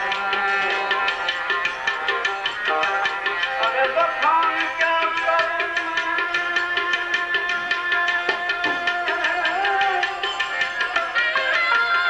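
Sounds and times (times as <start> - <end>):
devotional music melody: 0.0 - 12.0
tabla drumming: 0.0 - 12.0.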